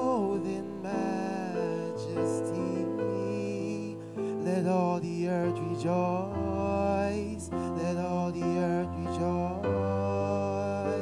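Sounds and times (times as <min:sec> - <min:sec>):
man singing into microphone: 0:00.0 - 0:11.0
sustained backing chords: 0:00.0 - 0:11.0.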